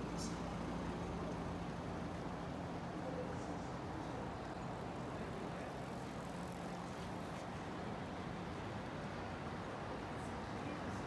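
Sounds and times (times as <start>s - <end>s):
distant traffic hum: 0.0s - 11.0s.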